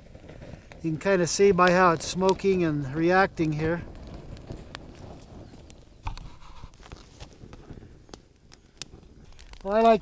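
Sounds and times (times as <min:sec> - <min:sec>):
sharp pops from fire: 0:00.0 - 0:10.0
small fire crackling: 0:00.0 - 0:10.0.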